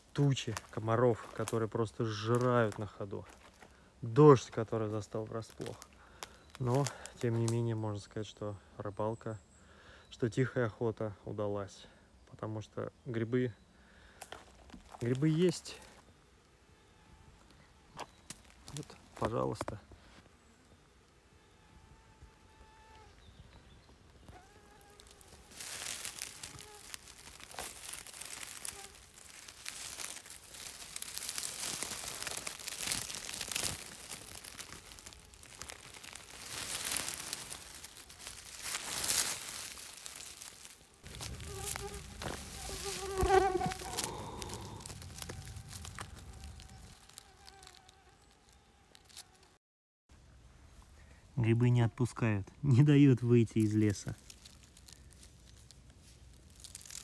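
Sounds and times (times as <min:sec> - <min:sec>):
rustling dry leaves and grass: 0:00.0 - 0:08.0, 0:13.9 - 0:49.6, 0:52.7 - 0:57.0
insect buzzing: 0:14.8 - 0:19.1, 0:20.2 - 0:49.6, 0:54.2 - 0:57.0.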